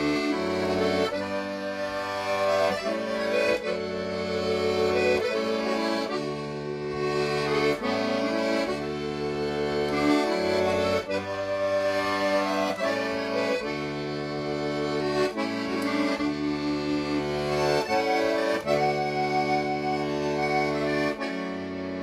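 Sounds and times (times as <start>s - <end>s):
accordion folk tune: 0.0s - 22.0s.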